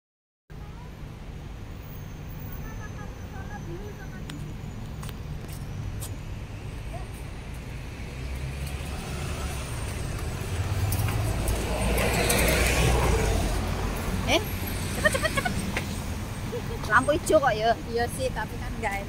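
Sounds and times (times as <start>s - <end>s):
road traffic rumble: 0.5s - 19.0s.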